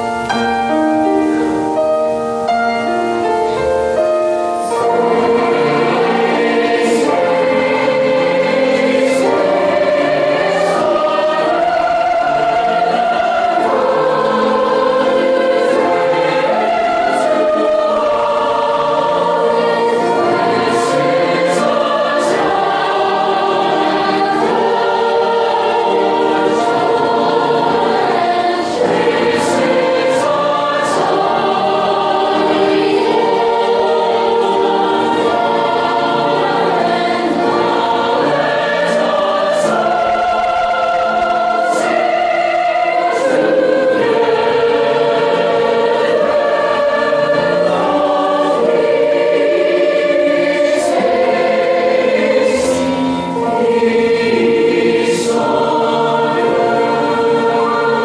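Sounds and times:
choir singing: 0.0 - 2.2, 3.3 - 58.0.

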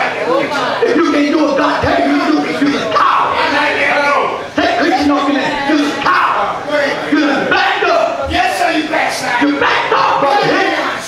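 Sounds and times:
preacher and congregation shouting: 0.0 - 11.0.

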